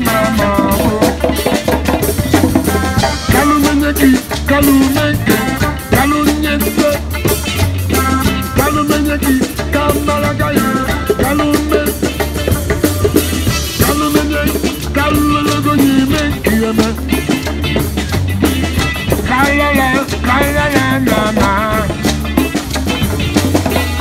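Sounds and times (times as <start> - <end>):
person singing: 0.0 - 1.8, 2.6 - 12.9, 13.5 - 17.8, 19.0 - 22.5
live street band playing ska: 0.0 - 24.0.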